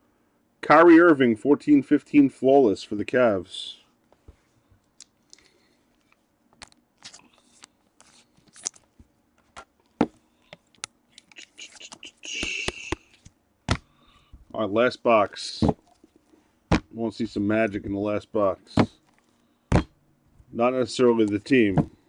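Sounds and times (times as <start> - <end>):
cards and plastic holders rustling: 5.3 - 13.9, 18.7 - 19.9
sharp knocks: 19.7 - 19.9.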